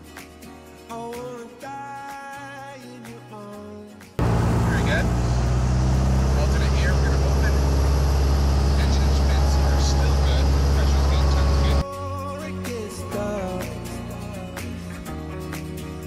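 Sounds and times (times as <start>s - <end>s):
propeller airplane engine drone: 4.2s - 11.8s
faint voices: 6.2s - 11.8s.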